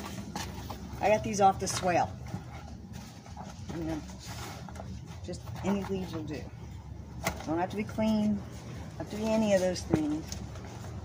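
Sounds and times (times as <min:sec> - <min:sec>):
leaves rustling: 0:07.4 - 0:11.0.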